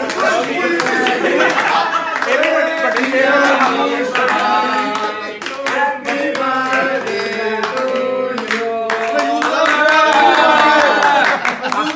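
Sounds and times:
men singing together: 0:00.0 - 0:11.2
hands clapping: 0:00.0 - 0:11.9.

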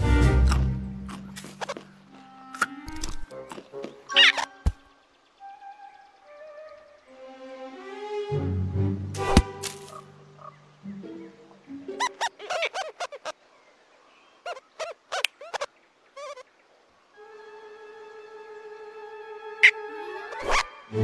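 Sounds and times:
soft orchestral music: 0:00.0 - 0:12.4, 0:17.0 - 0:21.0
squeaky rodent chittering: 0:04.1 - 0:04.7, 0:14.5 - 0:16.4.

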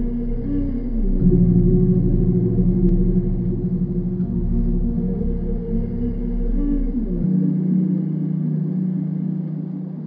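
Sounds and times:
dark ambient sustained tones: 0:00.0 - 0:10.0
deep bass drone: 0:00.0 - 0:10.0.

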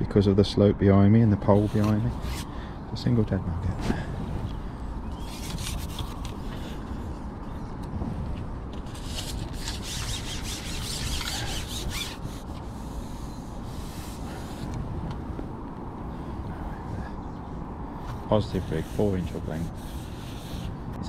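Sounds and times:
fishing pole sections scraping: 0:01.5 - 0:02.5, 0:05.1 - 0:06.8, 0:08.8 - 0:14.8, 0:18.5 - 0:20.8.

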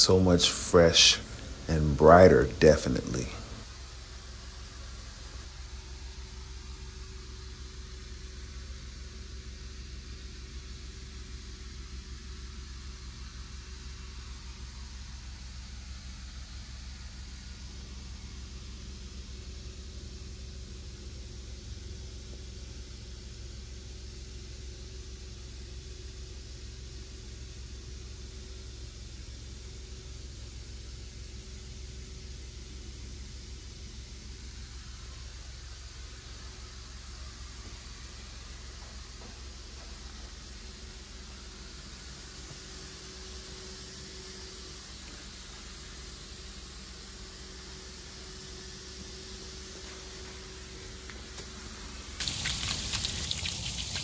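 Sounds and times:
machine running hum and hiss: 0:00.0 - 0:54.0.

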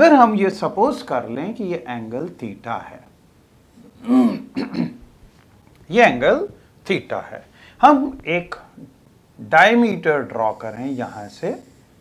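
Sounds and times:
man clearing his throat: 0:04.0 - 0:05.0.

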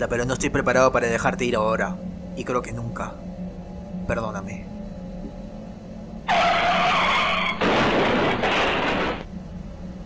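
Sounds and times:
car tyres screeching: 0:06.3 - 0:09.2
harsh car crash: 0:06.3 - 0:09.2.

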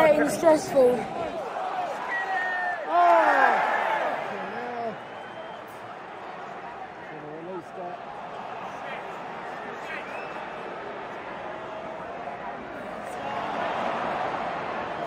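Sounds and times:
fans shouting: 0:00.0 - 0:15.0
stadium crowd noise: 0:00.0 - 0:15.0.

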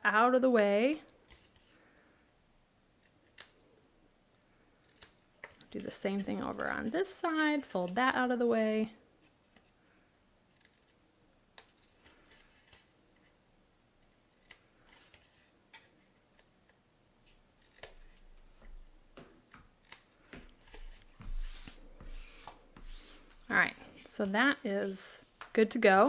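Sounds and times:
paper rustling: 0:19.8 - 0:26.0.

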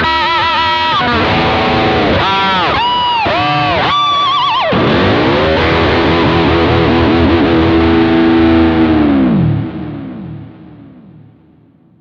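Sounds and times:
distorted electric guitar dive: 0:00.0 - 0:12.0.

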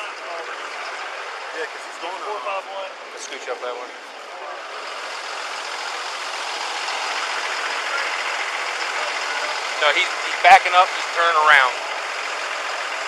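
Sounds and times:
ambulance engine running: 0:00.0 - 0:13.0.

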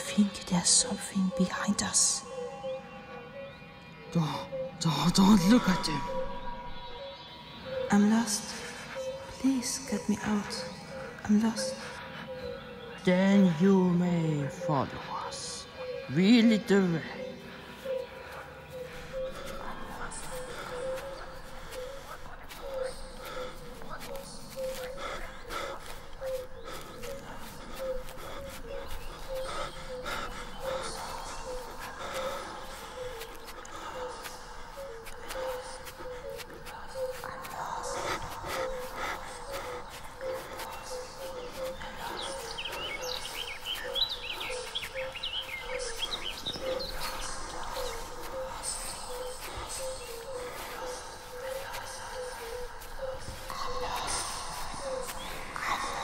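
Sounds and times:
birds chirping: 0:00.0 - 0:56.0
breathy panting voice: 0:17.2 - 0:56.0.

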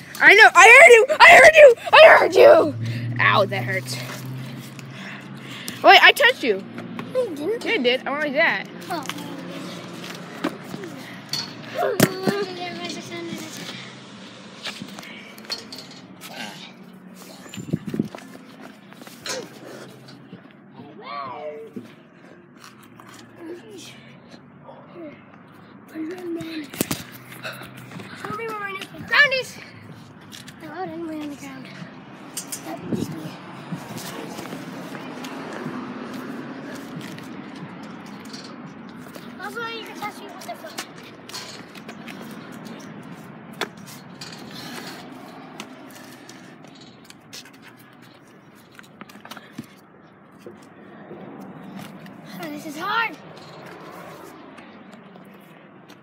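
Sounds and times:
children calling out: 0:00.2 - 0:03.0, 0:10.7 - 0:12.8.

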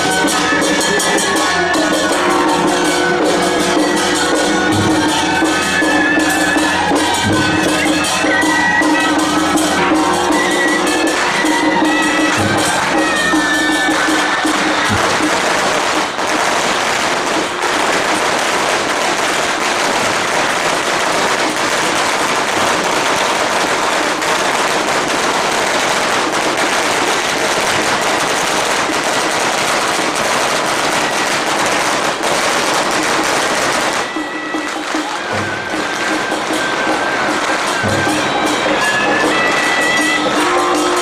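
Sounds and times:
firecrackers crackling: 0:00.0 - 0:41.0.

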